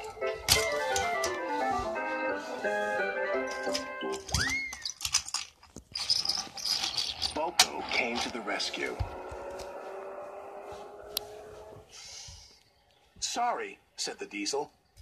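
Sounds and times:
cartoon background music: 0.0s - 4.8s
sliding pitch rising and falling: 6.2s - 11.9s.

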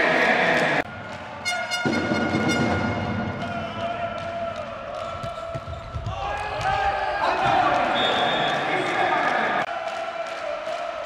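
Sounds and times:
crowd noise in arena: 0.0s - 11.0s
reedy horn note: 1.4s - 3.1s.

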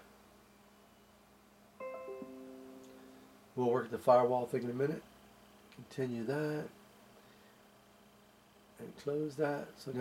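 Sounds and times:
notification chime: 1.8s - 3.4s.

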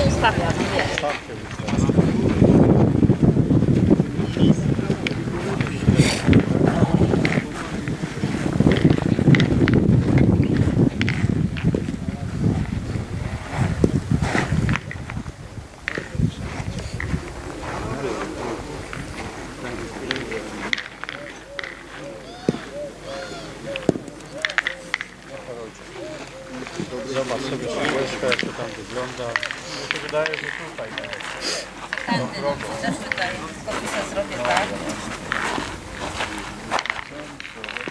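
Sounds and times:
indistinct voices talking: 0.0s - 37.9s.

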